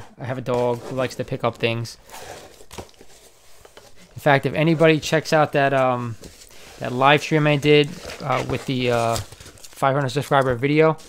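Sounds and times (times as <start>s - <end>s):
packing material rustling and crinkling: 0.4s - 11.0s.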